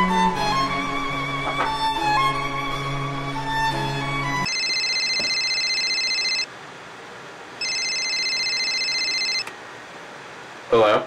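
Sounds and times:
violin music: 0.0 - 4.5
phone ringing: 4.4 - 6.5, 7.6 - 9.5.

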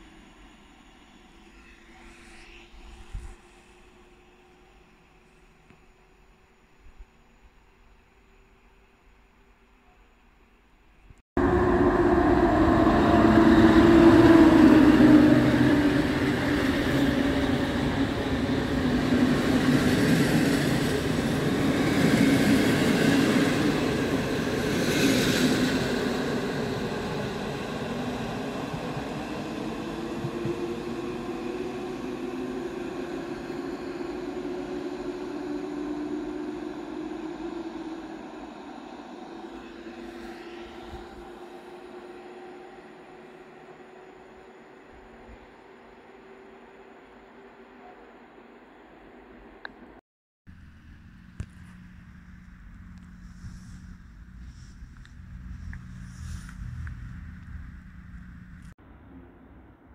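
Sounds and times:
electric locomotive passing: 0.0 - 6.4, 11.4 - 49.6, 50.6 - 59.9
train coaches running past: 11.4 - 48.9.

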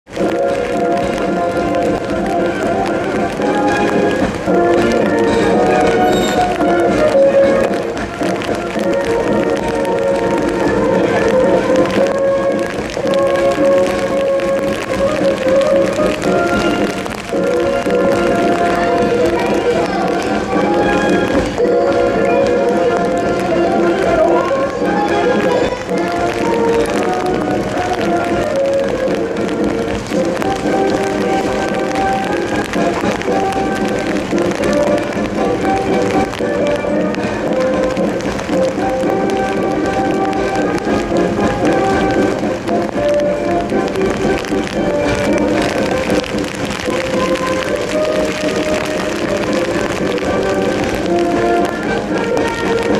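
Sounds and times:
military band playing a march: 0.2 - 52.9.

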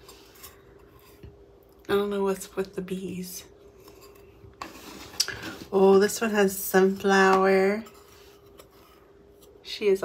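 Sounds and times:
woman speaking: 1.9 - 3.6, 5.7 - 8.0, 9.6 - 10.0
coaster sliding on tabletop: 4.6 - 5.8.

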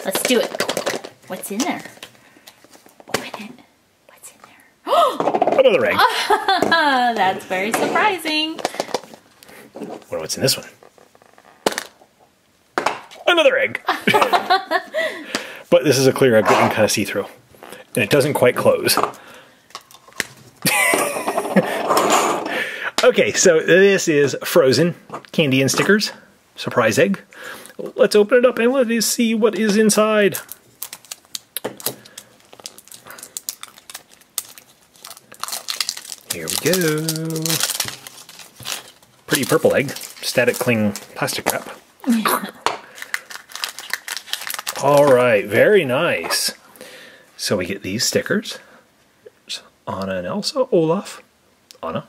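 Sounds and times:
plastic wrap clicks and crinkles: 0.0 - 3.1, 19.1 - 20.8, 29.6 - 41.8, 42.8 - 45.4.

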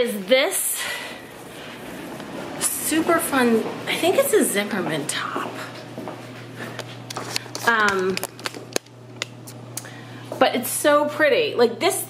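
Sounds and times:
low hum: 0.6 - 10.8.

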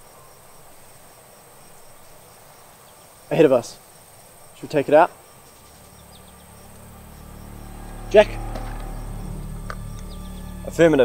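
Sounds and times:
faint insect chirping: 0.0 - 11.0
low steady drone: 4.6 - 11.0.

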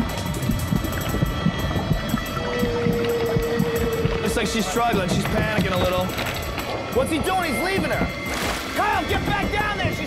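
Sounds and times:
churning underwater rumble: 0.0 - 10.0
steady held tone: 0.0 - 10.0.

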